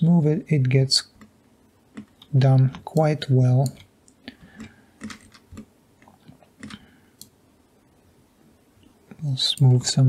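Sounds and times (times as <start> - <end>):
mouse and keyboard clicks: 4.6 - 7.3.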